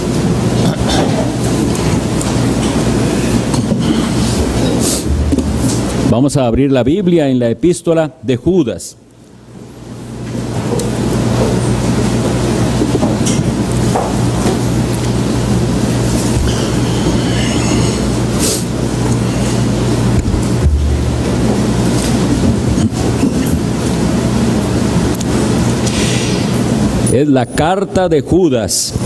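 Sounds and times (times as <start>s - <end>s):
low room hum and rumble: 0.0s - 29.0s.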